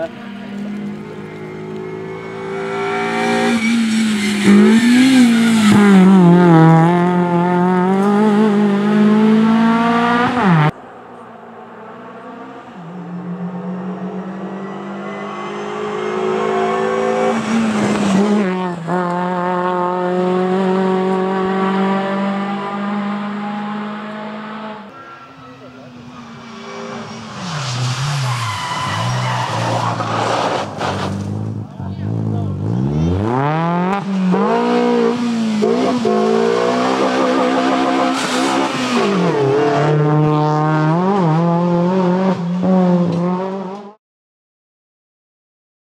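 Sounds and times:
rally car engine revving: 0.0 - 10.8, 11.6 - 44.0.

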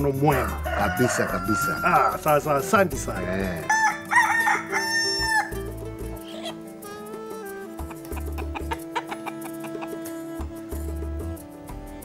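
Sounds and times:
background music tone: 0.0 - 12.0
rooster crowing: 0.3 - 2.0, 3.7 - 5.6.

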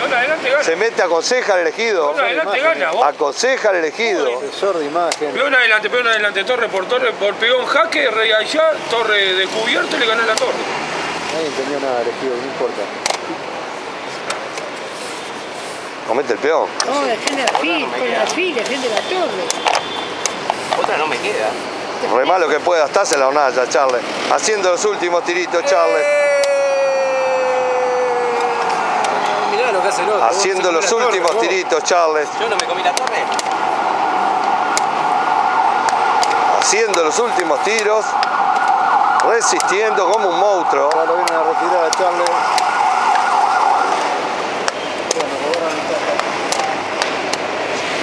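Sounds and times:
street background noise: 0.0 - 48.0.

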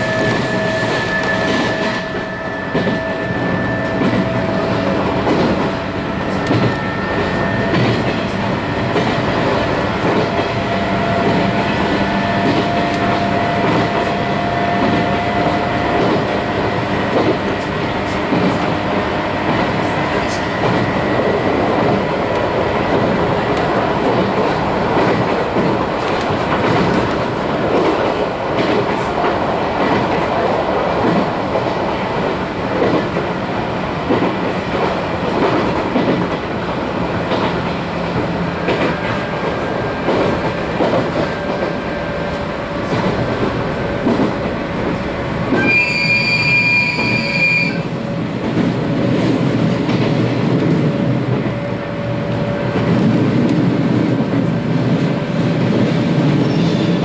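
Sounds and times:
train wheels rumbling on rails: 0.0 - 57.0.

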